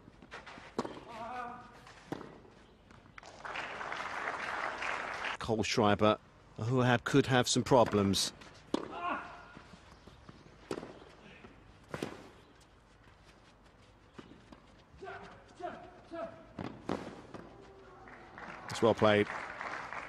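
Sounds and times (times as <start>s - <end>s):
tennis ball struck by racket: 0.7s - 1.2s, 2.1s - 2.5s, 8.7s - 9.1s, 10.7s - 11.0s, 11.9s - 12.3s.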